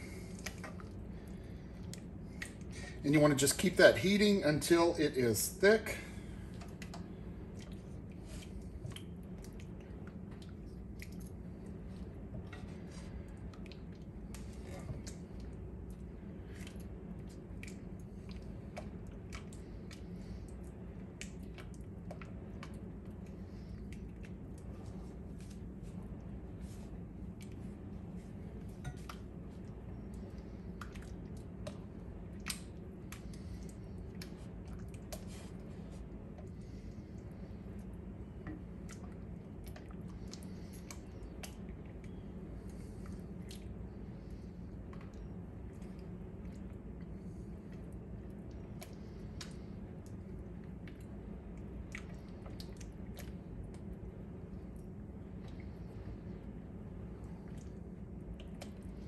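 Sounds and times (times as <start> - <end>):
thick filling bubbling and popping: 0.0 - 3.0, 6.3 - 59.0
steady low hum: 0.0 - 59.0.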